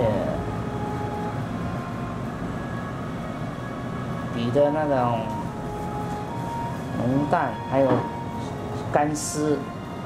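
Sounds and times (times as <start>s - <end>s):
background hum and hiss: 0.0s - 10.0s
faint steady tones: 0.0s - 10.0s.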